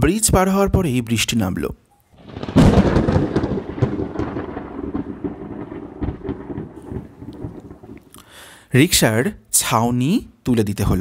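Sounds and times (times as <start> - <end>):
scattered crackles: 2.1 - 8.4
thunder rumbling: 2.2 - 8.2
rain falling: 2.2 - 8.4.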